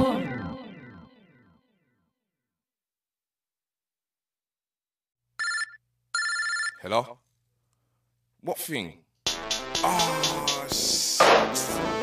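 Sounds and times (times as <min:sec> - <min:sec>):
telephone ringing: 0:05.4 - 0:06.9.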